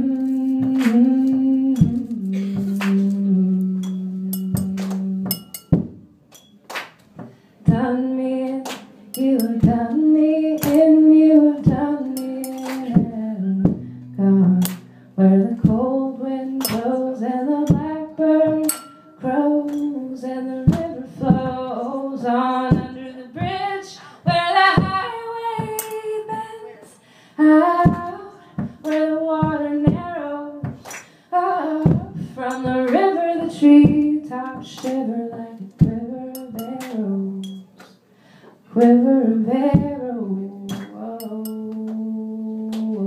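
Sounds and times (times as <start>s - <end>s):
woman singing slow melody: 0.0s - 5.9s, 7.6s - 37.8s, 38.7s - 43.0s
strummed acoustic guitar: 0.4s - 6.0s, 8.8s - 26.6s.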